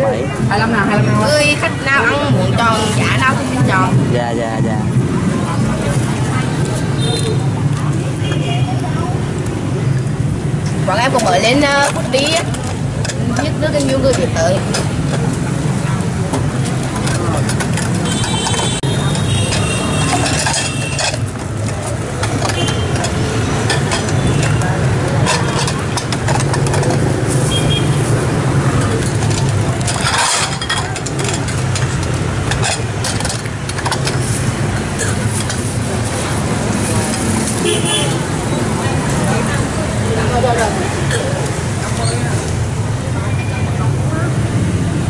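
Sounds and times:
street traffic noise: 0:00.0 - 0:45.0.

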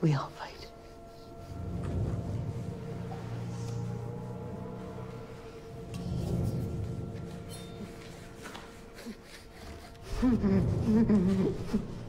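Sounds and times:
quiet held music score: 0:00.0 - 0:12.0.

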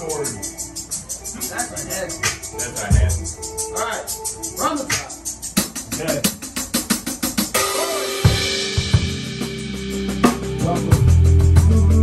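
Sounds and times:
drum hits: 0:02.2 - 0:03.4, 0:04.9 - 0:12.0
sustained bass notes: 0:08.3 - 0:12.0.

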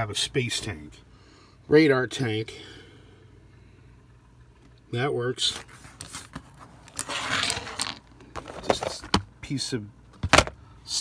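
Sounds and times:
scraping and rustling on table: 0:05.6 - 0:09.1.

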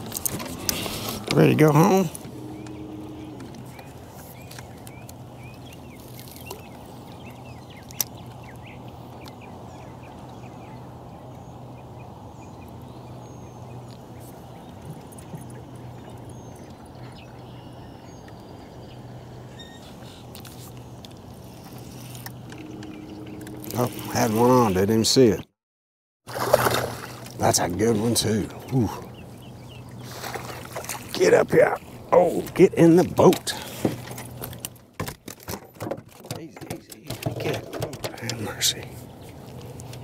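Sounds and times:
water noise: 0:00.0 - 0:25.5, 0:26.3 - 0:40.0
boat engine hum: 0:00.0 - 0:25.6, 0:26.3 - 0:40.0.

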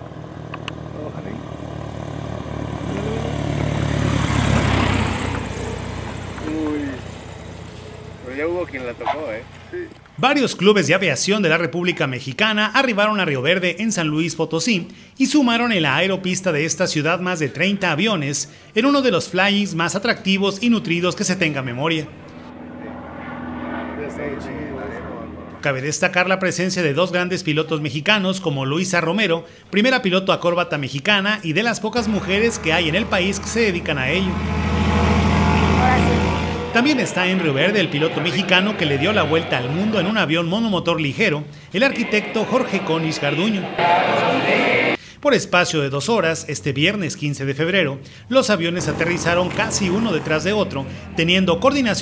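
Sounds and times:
propeller airplane landing: 0:00.0 - 0:10.2, 0:19.9 - 0:26.9, 0:31.9 - 0:45.0, 0:48.0 - 0:52.0.

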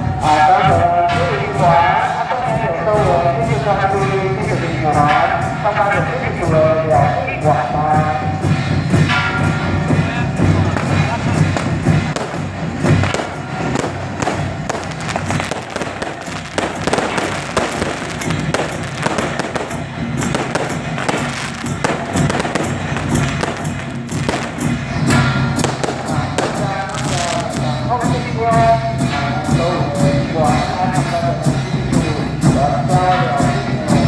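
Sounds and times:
firecrackers crackling: 0:08.4 - 0:29.6
loud music with singing: 0:14.9 - 0:34.0.

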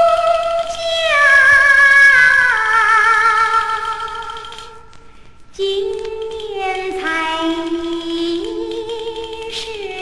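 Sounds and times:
record surface noise: 0:00.0 - 0:10.0.

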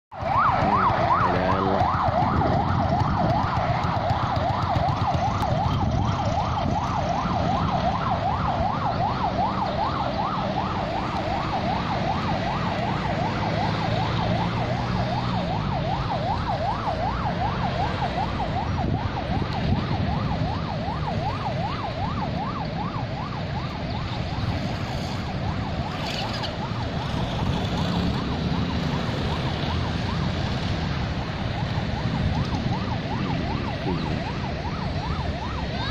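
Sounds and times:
siren yelping: 0:00.1 - 0:35.9
car engines running low: 0:00.2 - 0:35.9.

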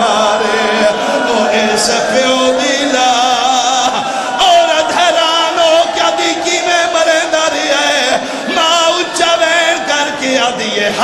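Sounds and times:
man chanting a lament: 0:00.0 - 0:11.0.

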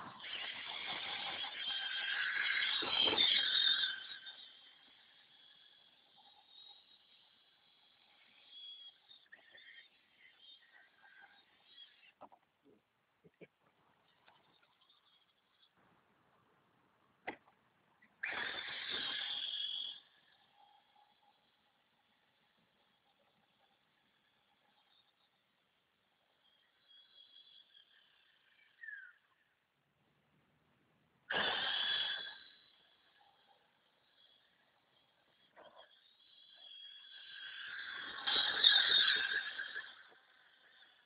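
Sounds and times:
electric motor whining: 0:00.0 - 0:09.4
rc truck electric motor: 0:00.0 - 0:12.4, 0:13.8 - 0:15.8, 0:18.1 - 0:29.7, 0:31.2 - 0:41.0.

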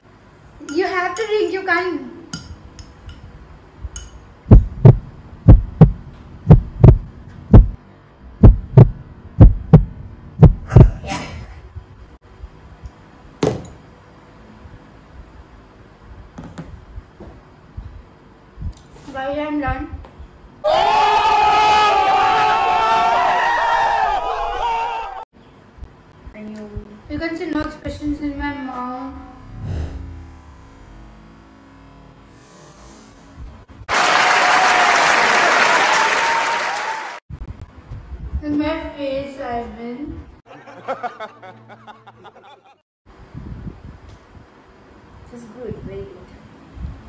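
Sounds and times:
heartbeat thuds: 0:04.5 - 0:07.8, 0:08.4 - 0:11.0, 0:19.6 - 0:20.4
young people yelling and shrieking: 0:20.6 - 0:25.2.

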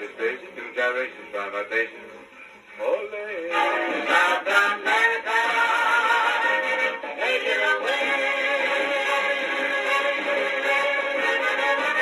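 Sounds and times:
swing record on gramophone: 0:00.0 - 0:12.0.

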